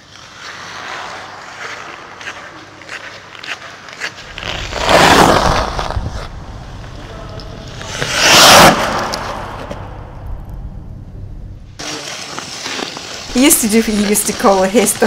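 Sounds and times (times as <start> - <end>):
ice skates scraping ice: 0.0 - 7.0, 7.6 - 9.9, 11.8 - 15.0
low steady rumble: 4.2 - 11.8.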